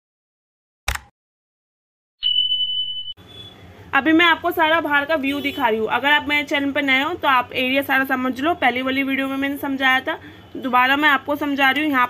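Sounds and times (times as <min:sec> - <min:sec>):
high-pitched electronic beep: 0:02.2 - 0:03.5.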